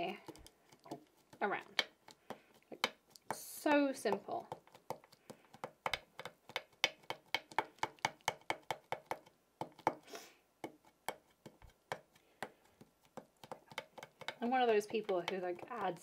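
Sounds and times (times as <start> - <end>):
ink pad tapping on stencil: 0.2 - 10.0, 10.6 - 16.0.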